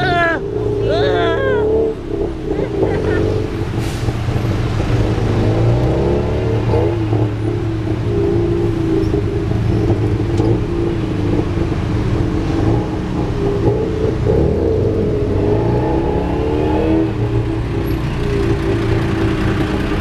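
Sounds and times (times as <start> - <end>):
road and traffic noise: 0.0 - 20.0.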